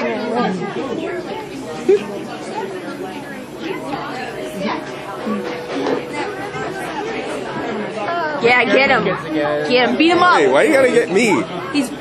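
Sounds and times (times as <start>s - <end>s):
people talking and laughing: 0.0s - 12.0s.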